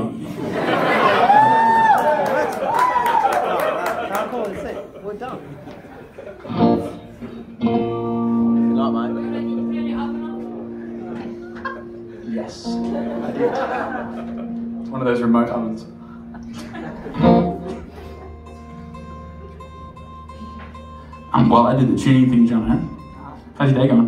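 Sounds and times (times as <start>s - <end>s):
audience cheering and whooping: 0.6s - 4.5s
people clapping: 1.1s - 6.0s
guitar strummed and picked: 6.5s - 24.0s.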